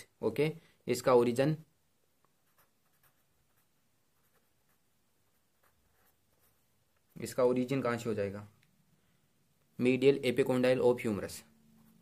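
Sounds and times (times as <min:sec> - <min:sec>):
marker pen scratching on paper: 0:02.2 - 0:07.3, 0:11.6 - 0:12.0.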